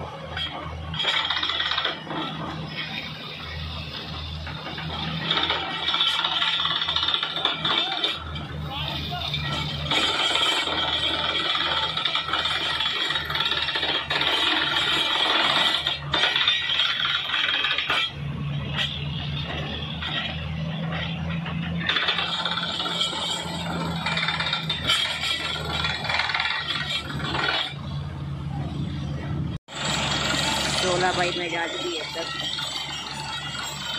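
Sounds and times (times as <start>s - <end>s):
drill rattling clatter: 0.4s - 3.1s, 4.2s - 8.4s, 9.3s - 27.8s, 29.7s - 33.9s
engine low hum: 18.1s - 31.2s.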